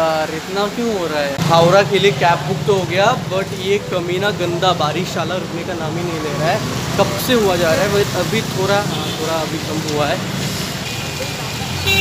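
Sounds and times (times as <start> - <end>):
street traffic rumble: 0.0 - 12.0
car horn toot: 11.8 - 12.0.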